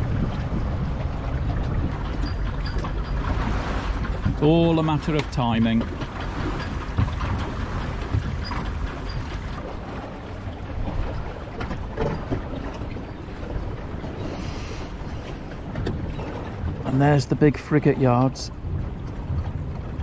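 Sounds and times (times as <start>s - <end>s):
water washing along a boat hull: 0.0s - 20.0s
wind buffeting microphone: 0.0s - 20.0s.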